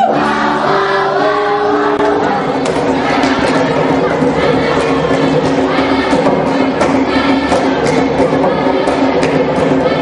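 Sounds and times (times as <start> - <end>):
choir singing held notes: 0.0 - 10.0
percussive hits: 2.1 - 10.0.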